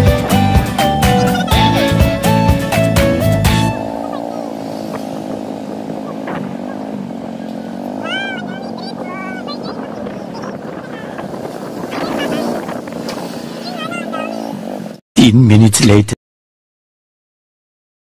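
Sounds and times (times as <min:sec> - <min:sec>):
vehicle engine running: 0:00.0 - 0:15.0.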